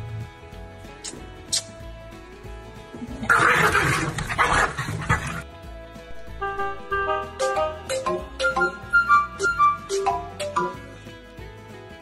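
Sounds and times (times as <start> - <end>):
dogs snarling and growling: 3.0 - 5.4.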